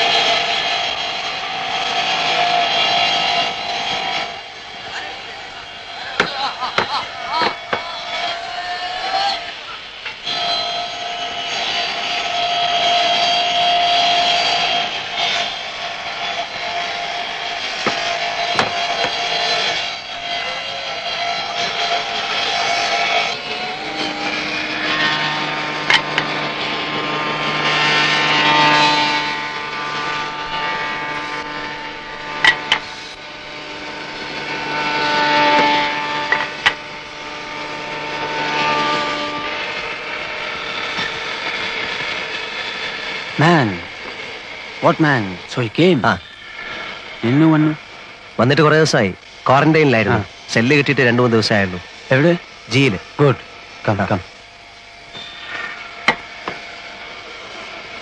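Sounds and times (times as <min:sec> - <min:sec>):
woodworking machine motor whine: 0:00.0 - 0:58.0
sharp wooden knocks: 0:17.8 - 0:19.2.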